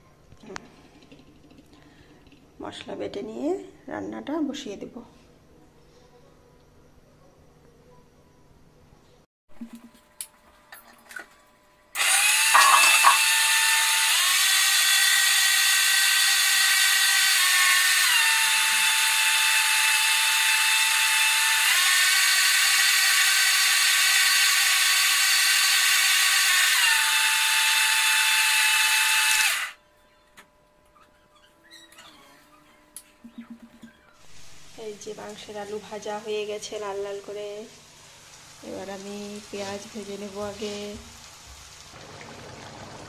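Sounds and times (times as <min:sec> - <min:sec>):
mixer grinder running: 0:12.0 - 0:29.8
jar knocking into place: 0:12.6 - 0:13.2.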